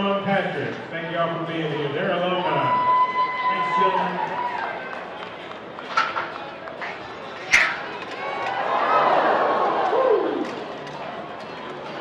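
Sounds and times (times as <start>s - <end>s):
crowd noise: 0.0s - 12.0s
metal gate banging open: 7.4s - 8.0s.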